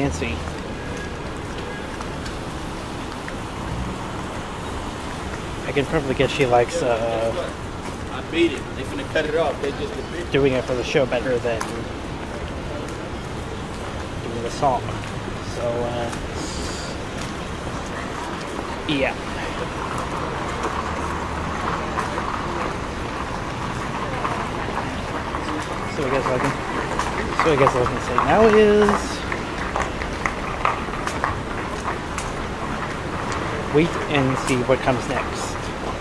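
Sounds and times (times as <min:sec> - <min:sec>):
faint footsteps on paving: 0:00.0 - 0:36.0
low traffic rumble: 0:00.0 - 0:36.0
tyres hissing on wet road: 0:00.0 - 0:36.0.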